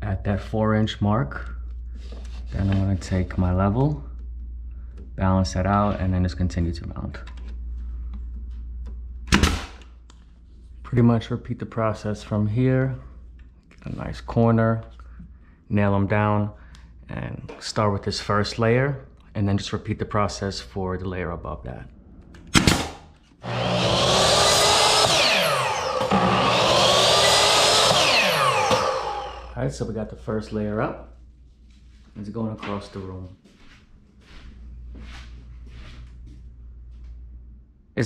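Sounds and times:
brad nailer firing: 9.3s - 9.8s, 22.5s - 29.5s
nail gun firing: 9.3s - 9.8s, 22.5s - 23.1s
miter saw cutting plastic: 23.4s - 29.6s.

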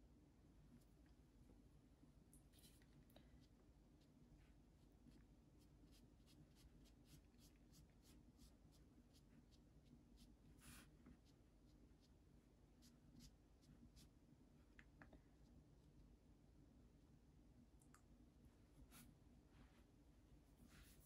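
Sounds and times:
low room hum: 0.0s - 21.0s
brush stroke on paper: 2.6s - 12.2s, 18.8s - 19.9s, 20.6s - 21.0s.

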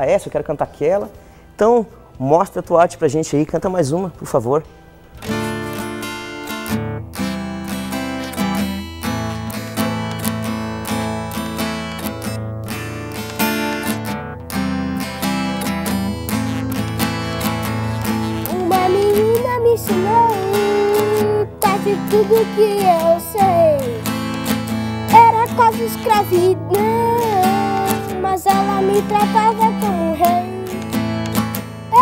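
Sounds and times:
acoustic guitar strumming: 4.6s - 32.0s.

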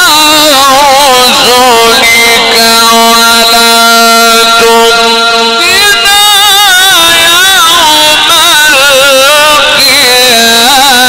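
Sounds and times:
man reciting over loudspeakers: 0.0s - 11.0s.

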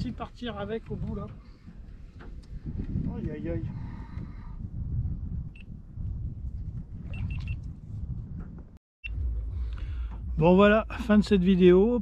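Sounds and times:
low fluctuating rumble: 2.6s - 12.0s.

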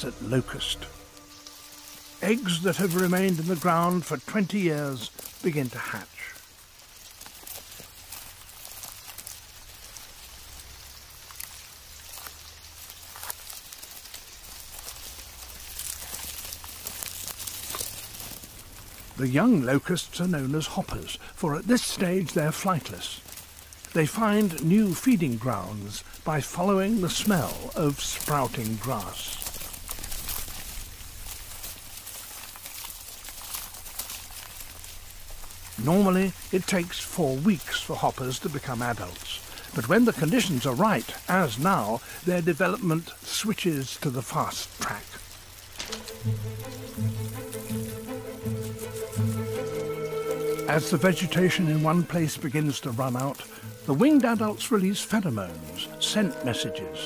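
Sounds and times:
locusts crackling and rustling: 0.0s - 57.0s.

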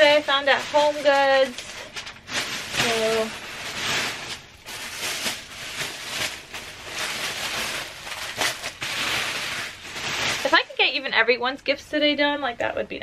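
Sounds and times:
gift bags rustling and crinkling: 0.0s - 11.5s.

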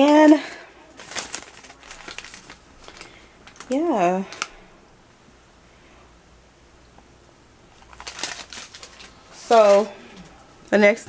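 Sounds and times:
paper and plastic crinkling: 0.0s - 4.6s, 7.7s - 10.4s.

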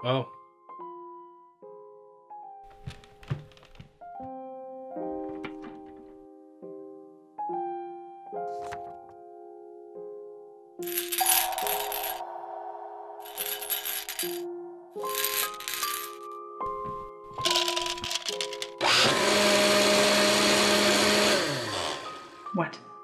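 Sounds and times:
soft piano music: 4.0s - 10.8s
kitchen rattling and clatter: 17.4s - 18.8s
kitchen appliance running: 18.8s - 22.4s.

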